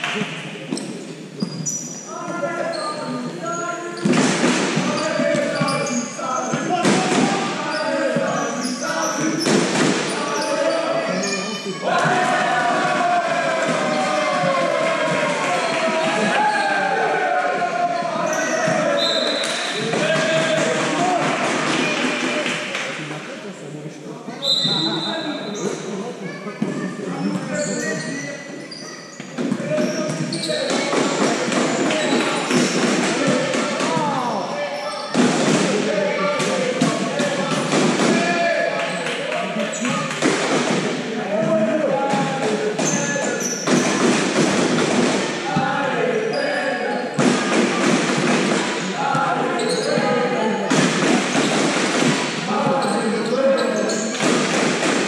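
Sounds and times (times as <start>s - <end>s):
players shouting in echoing hall: 0.0s - 23.1s, 24.4s - 55.0s
ball bouncing on hall floor: 4.0s - 10.5s, 29.2s - 34.4s.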